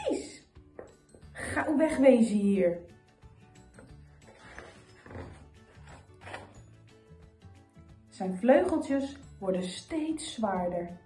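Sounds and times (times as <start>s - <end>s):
faint background music: 0.0s - 11.0s
book page rustling: 3.8s - 6.6s.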